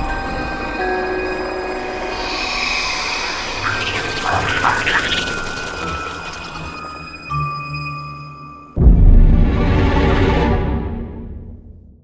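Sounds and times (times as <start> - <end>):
eerie held drone: 0.0 - 8.9.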